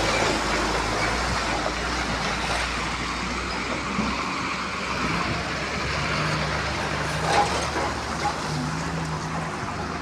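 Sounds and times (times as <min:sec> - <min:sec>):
road and wind noise: 0:00.0 - 0:10.0
truck engine humming: 0:00.0 - 0:10.0.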